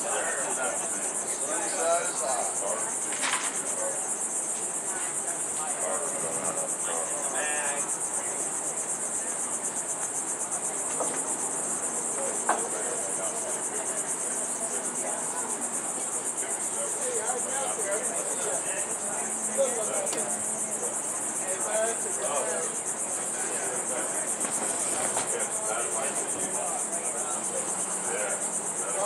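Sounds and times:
faint voices: 0.0 - 29.0
high-pitched insect chorus: 0.0 - 29.0.

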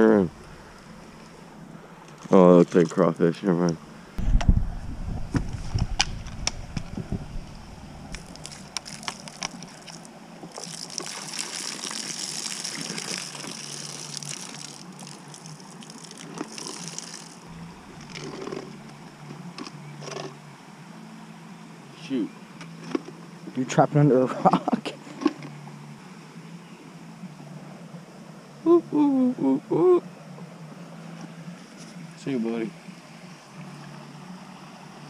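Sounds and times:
water pouring and splashing: 5.2 - 18.7.

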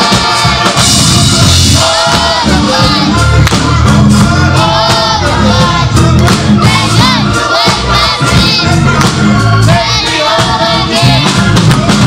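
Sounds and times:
gospel choir singing: 0.0 - 12.0
instrumental backing: 0.0 - 12.0
low bass notes: 0.0 - 12.0.

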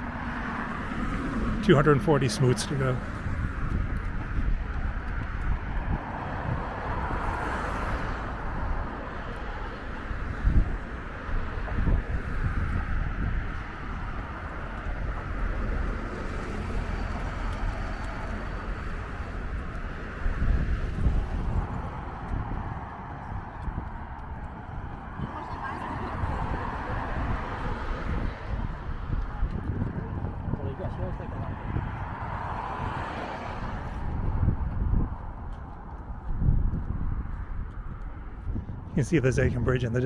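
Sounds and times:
road traffic passing: 0.0 - 40.0.

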